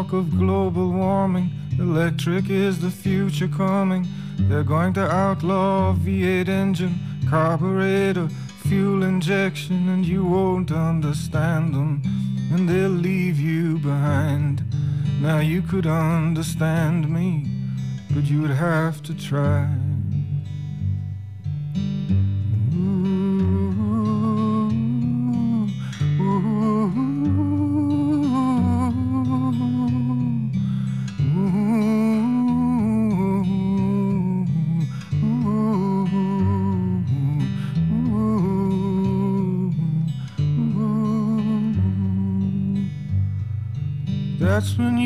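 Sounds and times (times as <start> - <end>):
acoustic guitar: 0.0 - 45.0.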